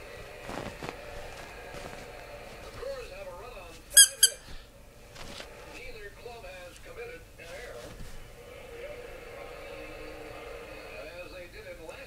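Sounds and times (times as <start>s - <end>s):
squeaky dog toy squeaks: 4.0s - 4.4s.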